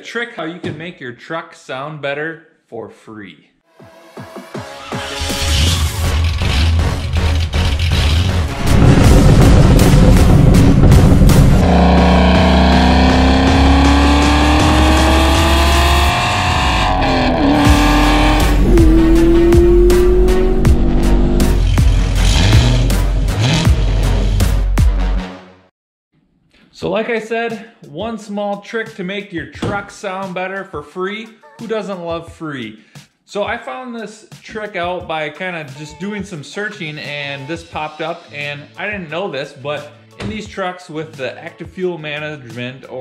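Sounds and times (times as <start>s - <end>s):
music with heavy beat: 3.8s - 16.4s, 17.2s - 25.4s
engine accelerating: 6.0s - 24.4s.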